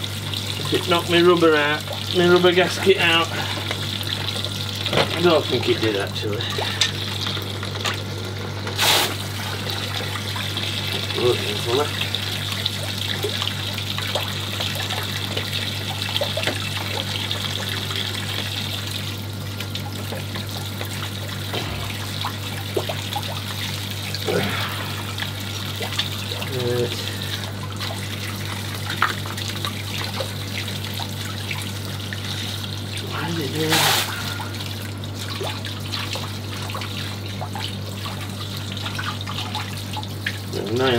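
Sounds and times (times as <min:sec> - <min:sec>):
steady low hum: 0:00.0 - 0:40.7
water trickling and hissing: 0:31.0 - 0:40.0.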